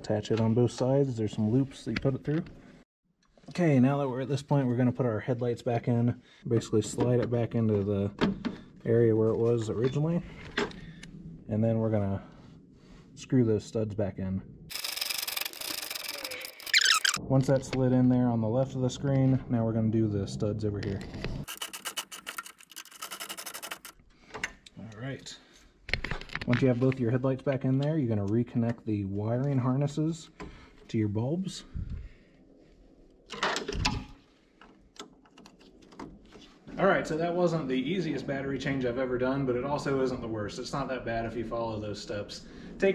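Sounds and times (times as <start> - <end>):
ratchet wrench clicking: 14.7 - 17.2.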